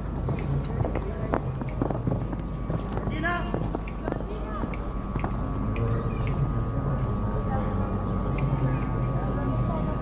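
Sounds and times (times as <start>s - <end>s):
horse hoofbeats on sand: 0.0s - 5.3s
low background hum: 0.0s - 10.0s.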